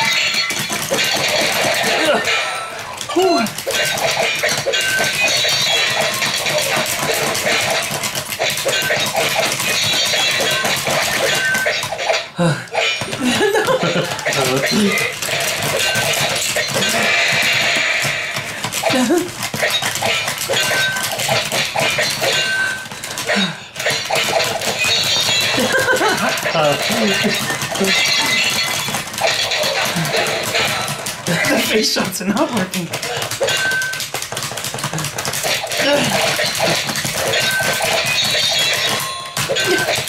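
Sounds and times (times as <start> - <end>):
plastic figures clicking and clattering: 0.0 - 40.0
person sighing and laughing: 12.4 - 15.0.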